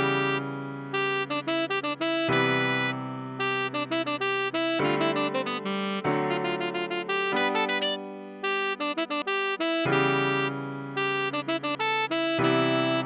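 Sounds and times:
electric piano chords: 0.0s - 13.0s
saxophone melody: 0.0s - 13.0s.

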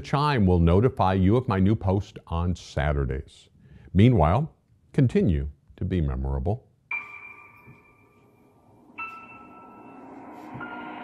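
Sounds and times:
chime ringing: 6.9s - 11.0s.

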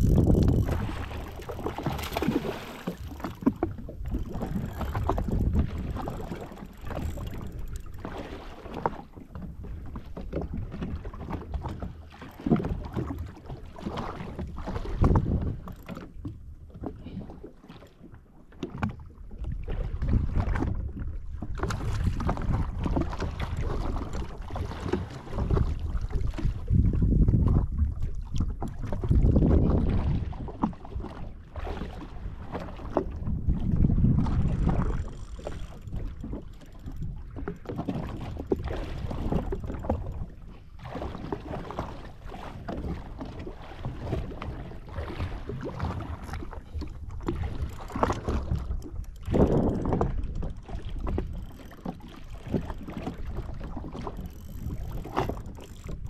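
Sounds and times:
wind buffeting microphone: 0.0s - 8.6s, 14.3s - 15.9s, 19.5s - 30.5s, 32.2s - 40.5s, 43.8s - 56.0s
waves slapping a hull: 0.0s - 56.0s.

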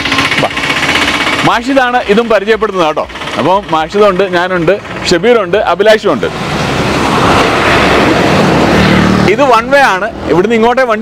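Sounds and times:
motor scooter passing: 6.1s - 10.4s
man talking: 9.2s - 11.0s.

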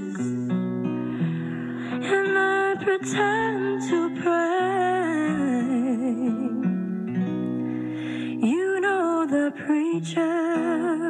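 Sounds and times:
girl singing: 0.0s - 0.6s, 1.5s - 6.8s, 8.3s - 11.0s
acoustic guitar: 0.0s - 11.0s.

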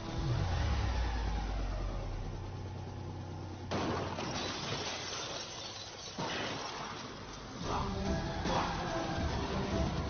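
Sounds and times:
engine drone: 0.0s - 4.3s, 7.3s - 10.0s
car crash: 3.7s - 7.3s.

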